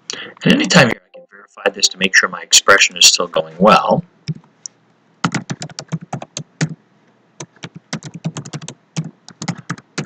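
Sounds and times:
computer keyboard typing: 0:05.2 - 0:06.8, 0:07.4 - 0:10.0.

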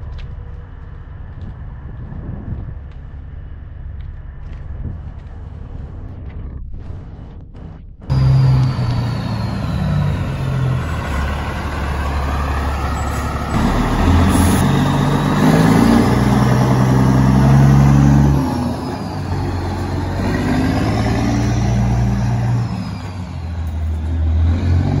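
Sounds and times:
diesel truck engines driving past: 0:08.1 - 0:25.0.

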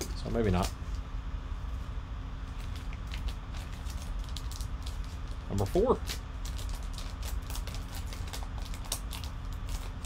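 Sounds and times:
foil pack crinkling and tearing: 0:02.5 - 0:10.0.

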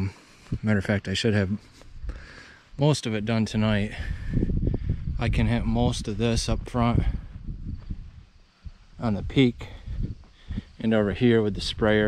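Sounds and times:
low rumble on microphone: 0:03.2 - 0:12.0.

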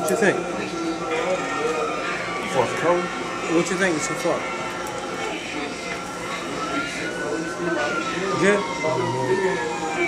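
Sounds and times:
low background voices: 0:00.0 - 0:10.0
siren wailing: 0:00.0 - 0:10.0.

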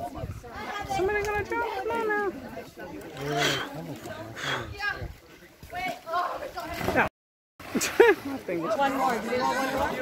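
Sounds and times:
people calling and talking: 0:00.0 - 0:10.0.

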